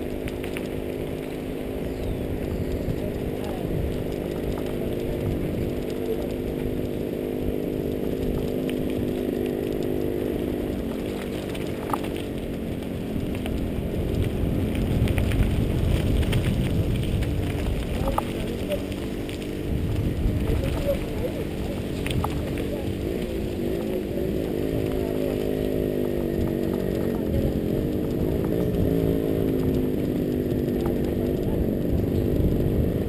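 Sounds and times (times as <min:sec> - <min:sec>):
wind noise: 0:00.0 - 0:08.6, 0:10.2 - 0:33.0
bike tyres rolling on rough track: 0:00.0 - 0:33.0
steady motor drone: 0:00.0 - 0:33.0.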